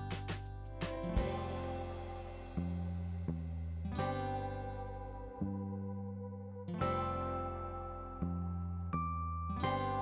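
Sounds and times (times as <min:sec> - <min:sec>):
acoustic guitar chords ringing: 0:00.0 - 0:10.0.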